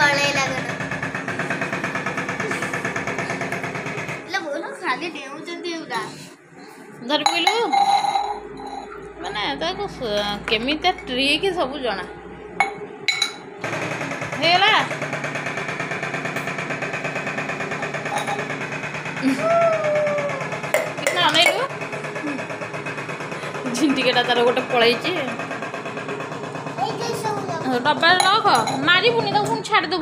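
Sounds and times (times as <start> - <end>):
small engine running: 0.0 - 4.4, 13.6 - 30.0.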